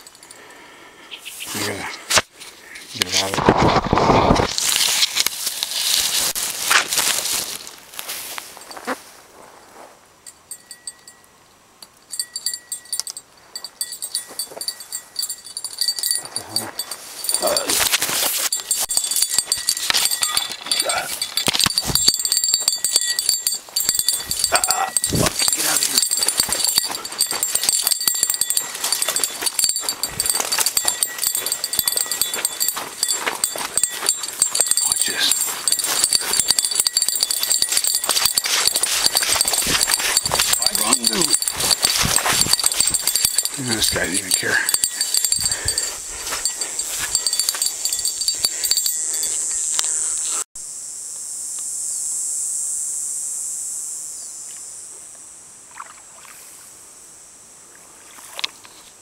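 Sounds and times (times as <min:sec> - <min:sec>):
brush and twigs rustling: 0:01.2 - 0:11.0, 0:12.2 - 0:50.4.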